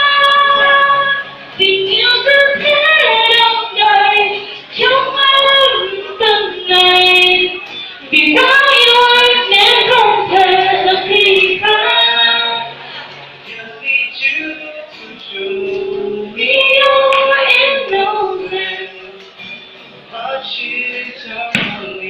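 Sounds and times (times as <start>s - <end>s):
woman singing slow song: 0.0s - 12.8s, 13.4s - 19.3s
acoustic guitar: 0.0s - 22.0s.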